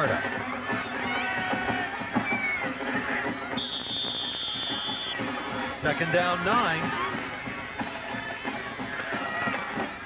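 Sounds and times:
stadium crowd noise: 0:00.0 - 0:10.0
referee's whistle blast: 0:03.6 - 0:05.2.

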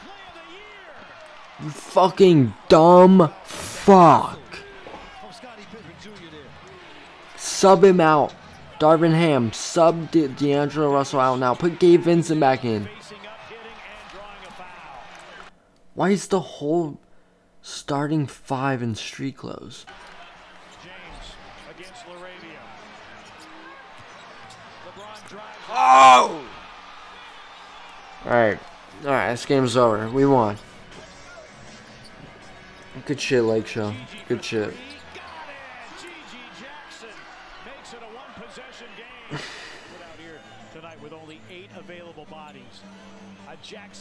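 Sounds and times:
sports commentary: 0:00.0 - 0:17.0, 0:17.6 - 0:44.0
arena background noise: 0:00.0 - 0:42.0
sneakers squeaking on court: 0:22.6 - 0:25.3, 0:30.6 - 0:33.0.

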